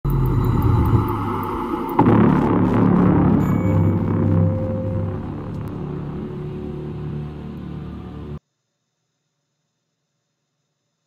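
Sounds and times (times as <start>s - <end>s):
deep cinematic rumble: 0.0s - 8.4s.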